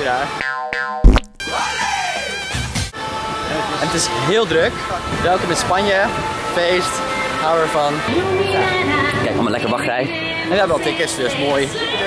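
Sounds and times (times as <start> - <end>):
background music: 0.0 - 12.0
springy boing tone: 0.4 - 1.5.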